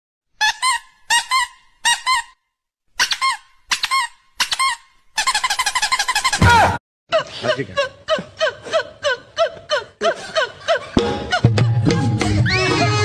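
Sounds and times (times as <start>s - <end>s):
squeaky toy squeaks: 0.4s - 2.4s, 3.0s - 6.7s.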